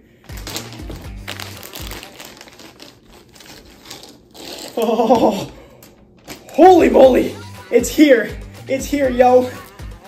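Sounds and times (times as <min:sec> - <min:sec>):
background music low notes: 0:00.0 - 0:10.0
plastic bag crinkling: 0:00.2 - 0:06.8.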